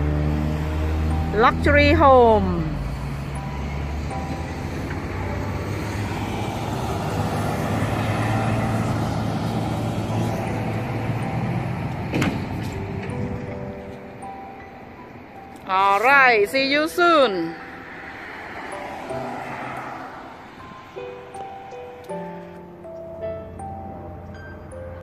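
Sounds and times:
car passing: 0:00.0 - 0:25.0.

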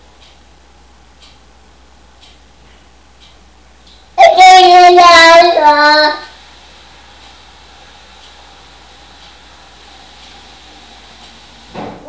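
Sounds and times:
high-pitched wordless call: 0:04.2 - 0:06.3.

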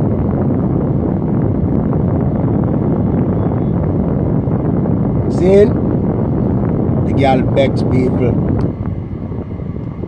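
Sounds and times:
air buffeting microphone: 0:00.0 - 0:10.0
car air conditioning blowing: 0:00.0 - 0:10.0.

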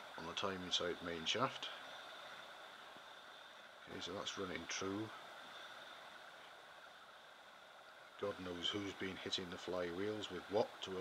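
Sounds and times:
thin high whine: 0:00.0 - 0:11.0.

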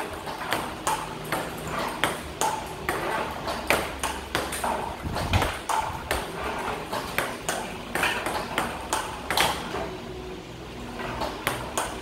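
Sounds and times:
table tennis balls bouncing: 0:00.0 - 0:10.1, 0:10.8 - 0:12.0
low steady hum: 0:00.0 - 0:12.0.

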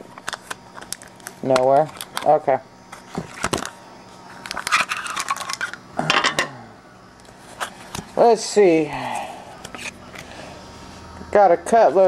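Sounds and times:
plastic packaging clicks and scrapes: 0:00.0 - 0:02.3, 0:02.9 - 0:03.8, 0:04.4 - 0:05.8.

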